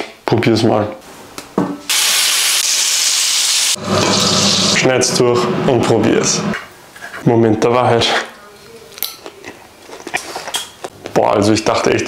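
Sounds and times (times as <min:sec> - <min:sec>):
steak sizzling in frying pan: 0:01.9 - 0:04.8.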